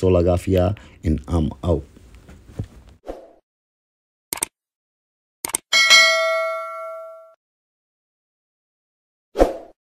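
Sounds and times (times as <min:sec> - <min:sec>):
bell ding: 0:05.7 - 0:07.4.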